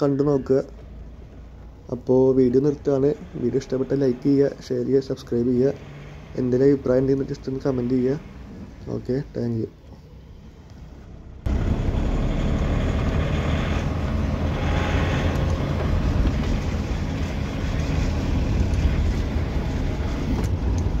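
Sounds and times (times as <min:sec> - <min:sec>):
engine and road rumble: 0:00.0 - 0:21.0.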